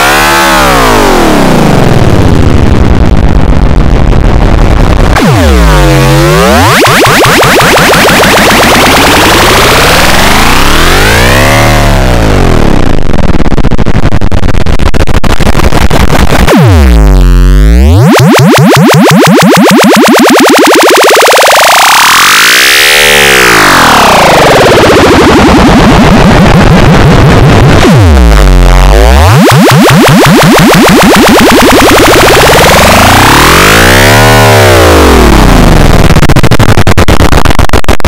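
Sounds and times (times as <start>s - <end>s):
distorted synthesizer jingle: 5.1s - 12.9s, 16.5s - 36.8s.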